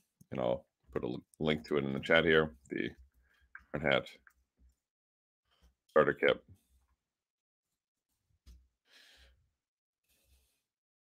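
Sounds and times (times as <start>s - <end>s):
faint breath: 8.8s - 10.7s.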